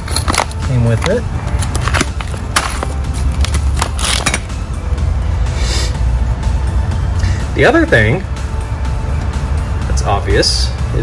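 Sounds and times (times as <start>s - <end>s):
plastic bags crinkling: 0.0s - 4.5s.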